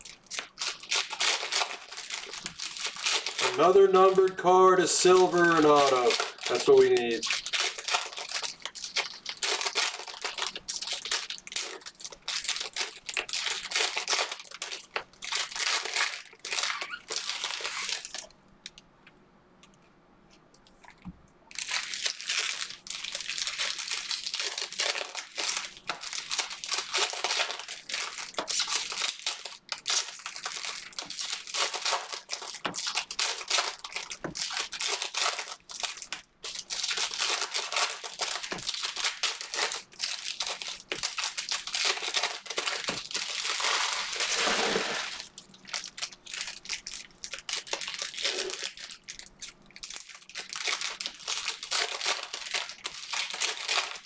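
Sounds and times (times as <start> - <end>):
foil wrappers crinkling: 0.0 - 18.3, 21.5 - 54.0.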